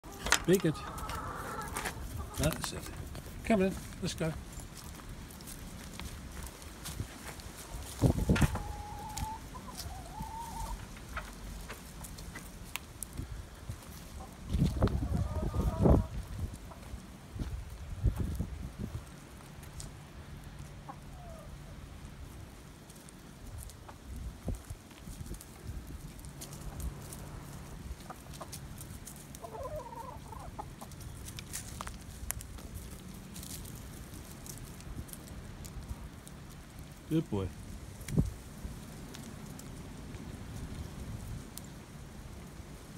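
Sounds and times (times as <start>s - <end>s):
hens clucking: 0.0s - 5.0s, 7.4s - 12.4s, 14.0s - 17.0s, 20.6s - 21.7s, 26.5s - 31.7s
drawn-out hen calls: 0.0s - 37.0s.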